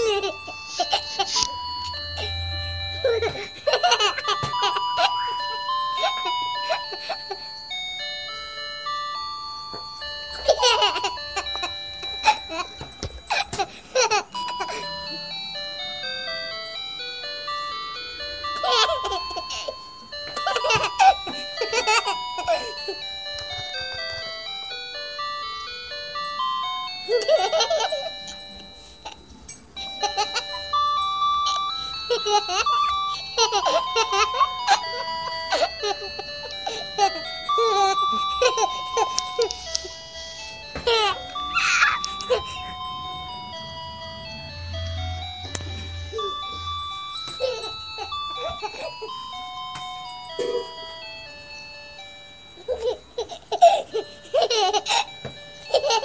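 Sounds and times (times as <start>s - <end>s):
child laughing and babbling: 0.0s - 1.5s, 3.0s - 7.5s, 40.8s - 42.9s, 47.3s - 49.2s
electronic beeping jingle: 0.6s - 13.3s, 29.8s - 52.7s.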